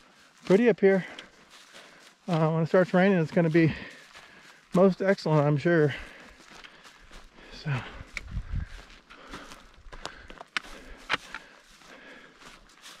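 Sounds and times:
footsteps through dry grass: 0.0s - 13.0s.

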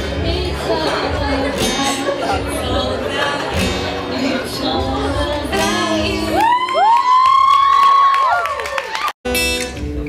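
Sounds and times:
audience whooping: 6.3s - 9.2s.

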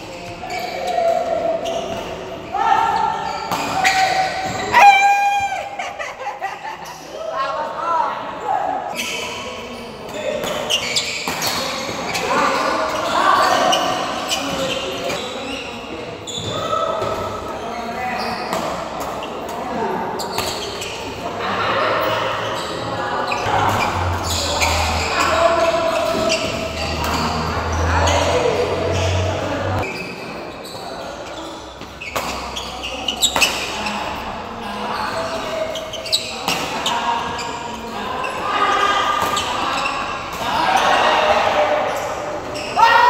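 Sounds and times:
players' voices: 0.0s - 43.0s
loud squeal: 22.5s - 31.6s.

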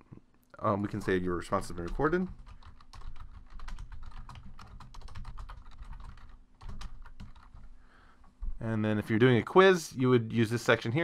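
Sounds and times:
computer keyboard typing: 0.9s - 7.7s.

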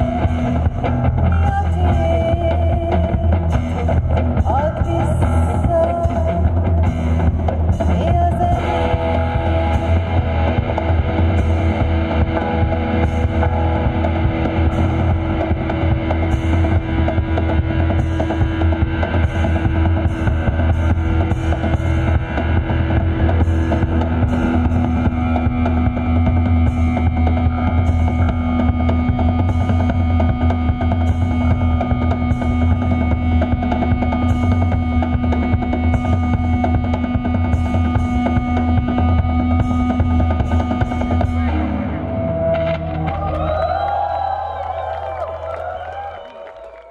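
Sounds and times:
drum kit beating: 0.0s - 41.8s
deep bass drone: 0.0s - 46.3s
live band playing: 0.0s - 46.8s.

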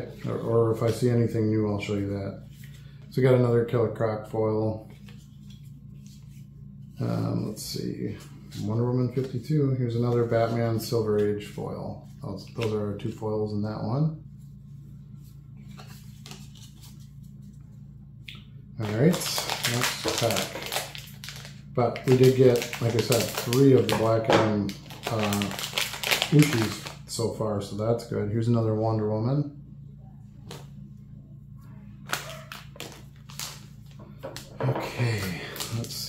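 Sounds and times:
low hum: 0.0s - 36.0s
cards rustling: 15.6s - 17.6s, 18.8s - 27.1s, 32.1s - 36.0s.

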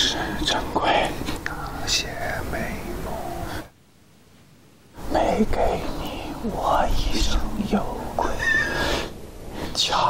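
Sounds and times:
man singing softly: 0.0s - 3.7s.

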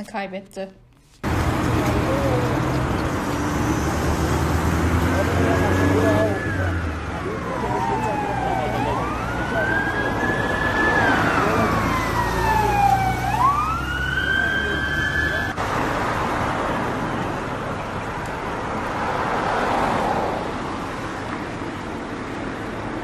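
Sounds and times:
low traffic hum: 0.0s - 23.0s
bystanders' voices: 1.3s - 15.6s
emergency siren wailing: 1.6s - 15.6s.

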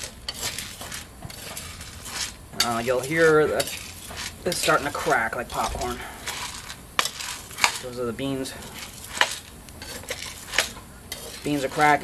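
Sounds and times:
coffee beans popping: 0.0s - 12.0s
metal spatula stirring beans: 0.0s - 12.0s.

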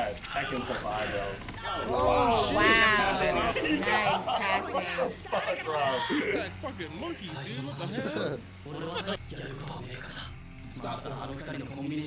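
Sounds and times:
background music: 0.0s - 12.0s.

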